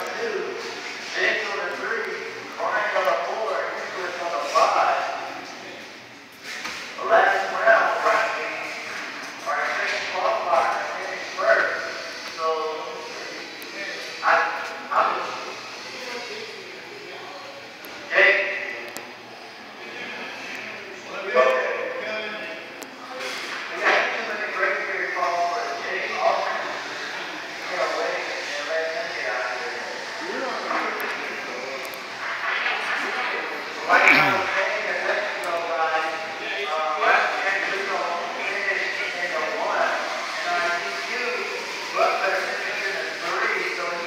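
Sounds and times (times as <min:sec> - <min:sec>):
public-address voice echoing: 0:33.9 - 0:34.8.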